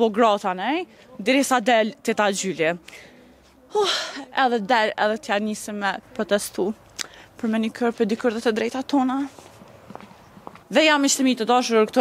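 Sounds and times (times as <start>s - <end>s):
woman speaking: 0.0s - 2.9s, 3.6s - 6.8s, 7.4s - 9.4s, 10.7s - 12.0s
footsteps on paving: 9.2s - 10.8s.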